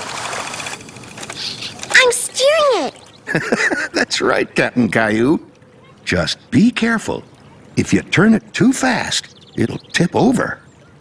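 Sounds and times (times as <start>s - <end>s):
water rushing: 0.0s - 10.6s.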